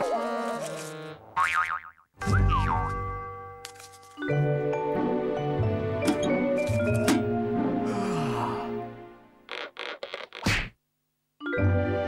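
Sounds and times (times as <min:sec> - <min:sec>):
background music: 0:02.2 - 0:09.5, 0:11.4 - 0:12.0.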